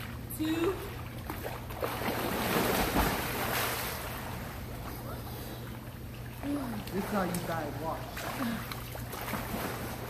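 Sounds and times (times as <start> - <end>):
pool water splashing: 0.0 - 10.0.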